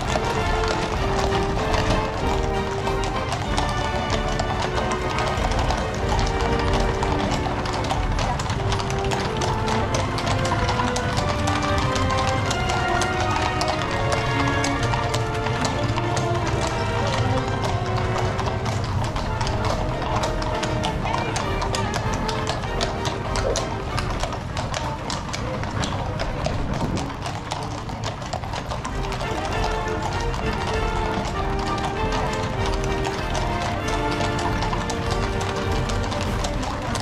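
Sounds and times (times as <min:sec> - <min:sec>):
music: 0:00.0 - 0:26.0, 0:28.1 - 0:37.0
horse hooves clip-clopping on brick: 0:00.0 - 0:37.0.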